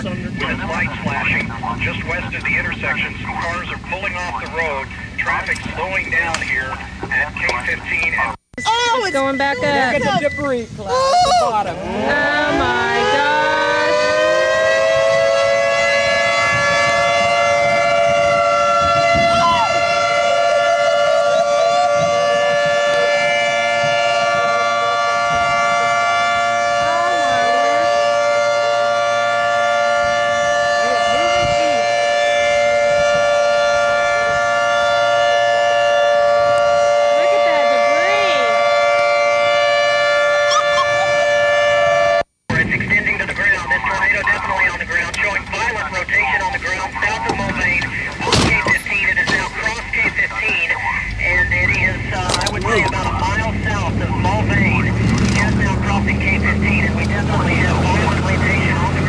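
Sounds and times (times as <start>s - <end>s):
tornado warning siren: 0.0s - 59.0s.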